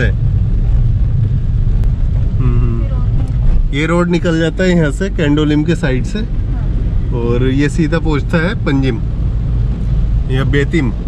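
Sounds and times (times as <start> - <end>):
car driving on wet road: 0.0 - 11.0.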